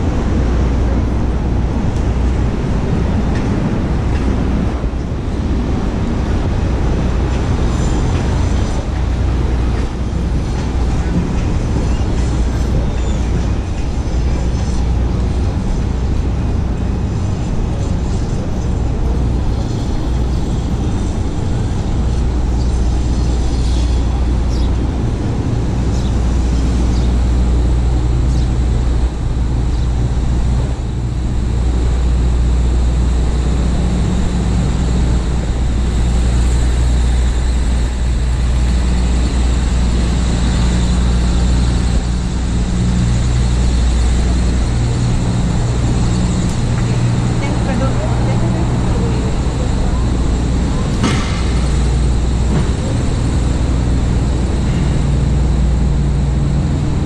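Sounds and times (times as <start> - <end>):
passers-by voices: 0.0 - 26.6, 28.9 - 55.0
traffic rumble: 0.0 - 57.0.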